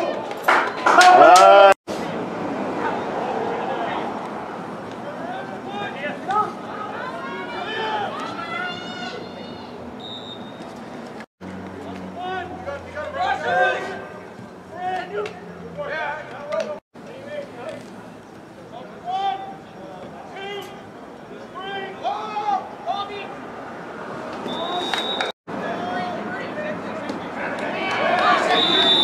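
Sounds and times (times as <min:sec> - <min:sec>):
spectators talking and calling out: 0:00.0 - 0:10.2, 0:11.8 - 0:29.0
short high whistle blast: 0:28.5 - 0:29.0.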